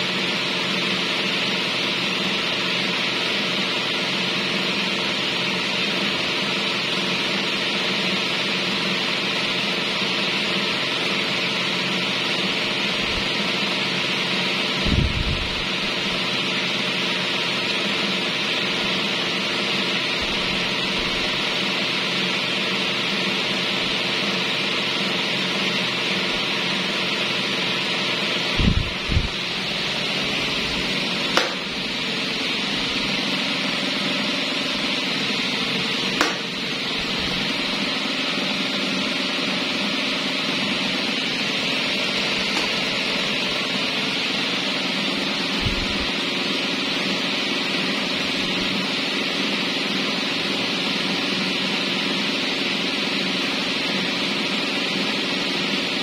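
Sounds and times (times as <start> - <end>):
electric fans running: 0.0 - 56.0.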